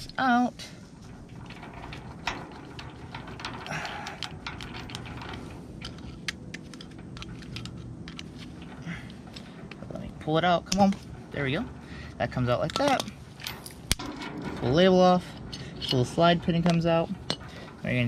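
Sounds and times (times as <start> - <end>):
metal chain clinking: 0.9 - 18.0.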